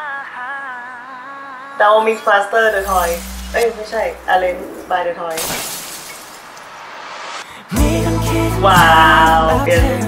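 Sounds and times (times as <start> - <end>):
glass shattering: 5.3 - 7.0.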